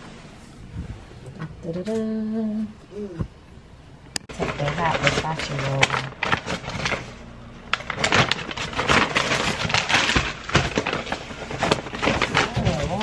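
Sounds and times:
paper bag rustling: 4.2 - 13.0.

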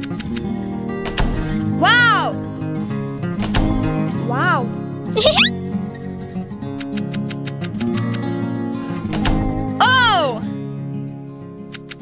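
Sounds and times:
cartoon music with acoustic guitar: 0.0 - 12.0
cartoon character vocal sound: 1.8 - 2.4, 4.3 - 5.5, 9.8 - 10.5.

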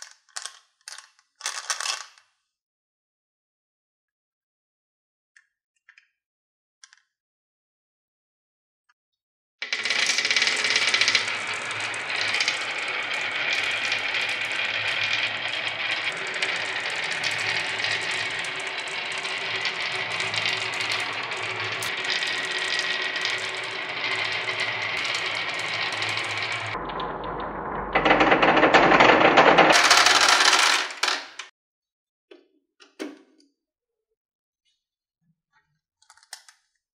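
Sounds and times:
marbles pouring into plastic toy: 0.4 - 2.2, 9.6 - 31.4
marbles rolling down wooden board: 9.6 - 31.5.

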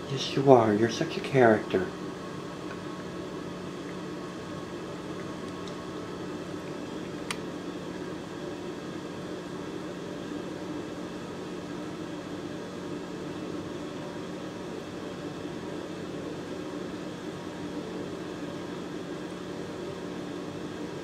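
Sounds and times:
fan running with hum and hiss: 0.0 - 21.0.

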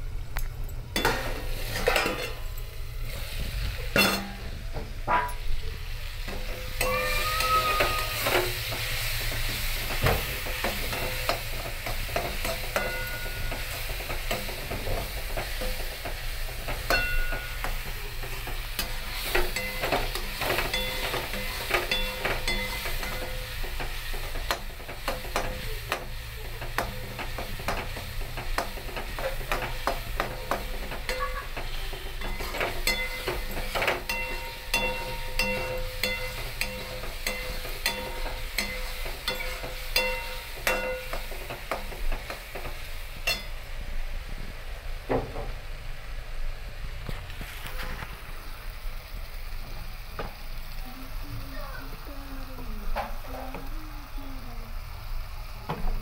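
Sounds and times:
sauce sizzling in oil: 0.0 - 56.0
metal spoon scraping pan: 1.0 - 2.4, 26.8 - 42.4
pan ringing: 12.7 - 13.7, 16.9 - 17.7, 20.7 - 23.5, 32.2 - 41.3.

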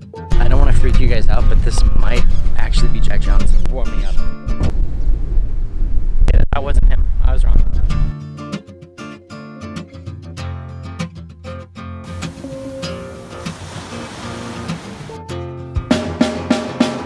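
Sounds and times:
plucked acoustic guitar: 7.9 - 16.8
soft wash of noise: 12.1 - 15.2
drum kit playing: 12.1 - 17.0.

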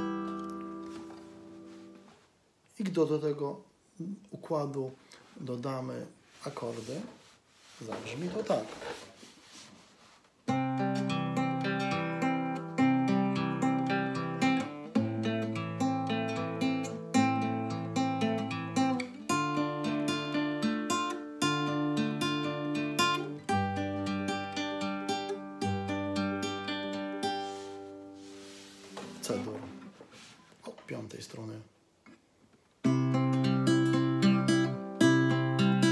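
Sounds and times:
fingerpicked classical guitar: 0.0 - 2.2, 10.4 - 30.8, 32.8 - 35.9.

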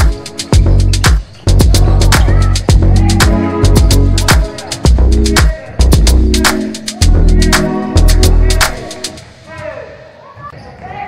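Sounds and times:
voices calling out: 0.1 - 9.6.

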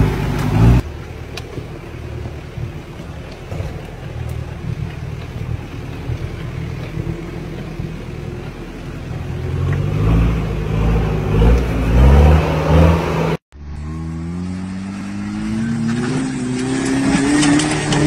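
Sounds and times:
engine accelerating: 0.0 - 18.0
engines revving unevenly: 0.0 - 18.0.

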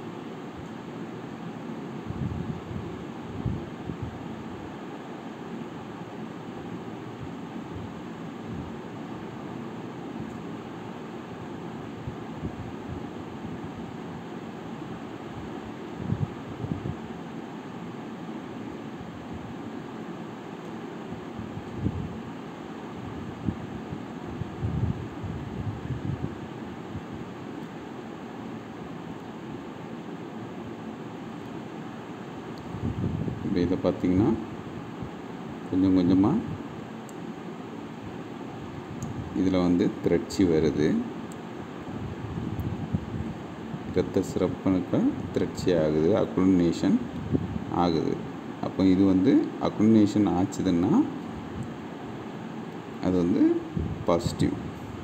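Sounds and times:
fan hiss and hum: 0.0 - 55.0.

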